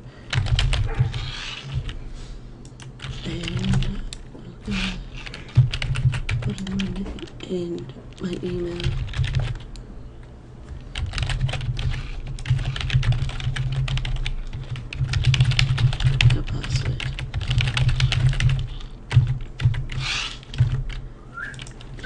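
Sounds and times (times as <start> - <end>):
typing on computer keyboard: 0.3 - 2.0, 2.6 - 4.3, 5.2 - 9.8, 10.9 - 21.9.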